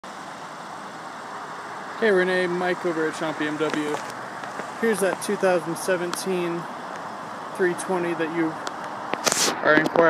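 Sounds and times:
distant road traffic hiss: 0.0s - 10.0s.

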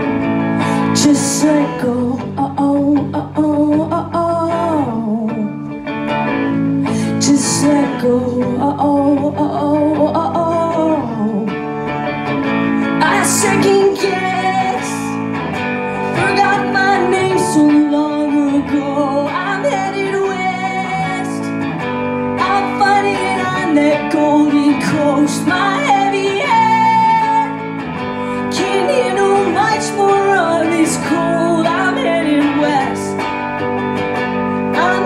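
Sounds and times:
electric guitar strumming: 0.0s - 35.0s.

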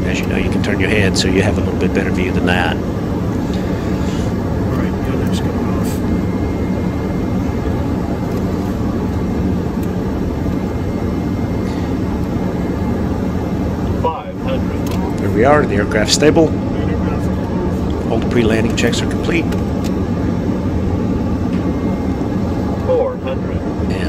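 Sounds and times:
jet engine and airflow noise: 0.0s - 24.0s.

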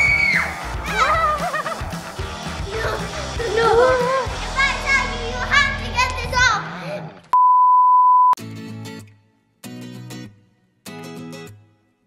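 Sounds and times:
music: 0.0s - 7.3s, 8.4s - 12.0s
children's excited voices: 2.5s - 6.8s
electronic beep tone: 7.4s - 8.4s.

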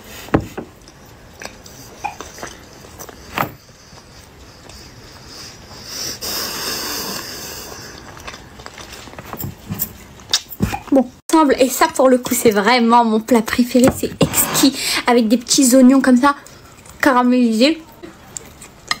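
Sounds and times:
person chewing food: 0.0s - 10.9s, 16.4s - 17.0s, 18.0s - 19.0s
breath out through nose: 5.2s - 8.0s.

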